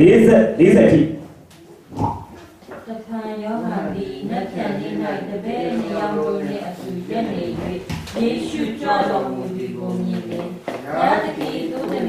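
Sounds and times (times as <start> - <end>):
man talking into a microphone: 0.0 - 1.2.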